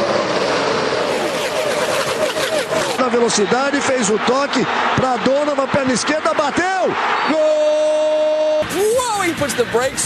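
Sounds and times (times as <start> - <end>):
race cars passing at full throttle: 0.0 - 3.0.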